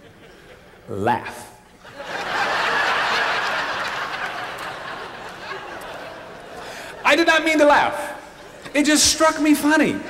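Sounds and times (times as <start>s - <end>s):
audience laughing: 0.0s - 0.9s, 1.8s - 7.1s.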